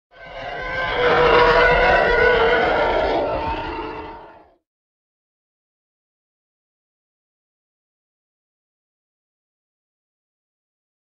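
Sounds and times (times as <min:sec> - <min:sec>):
rough animal-like roar: 0:00.1 - 0:04.6.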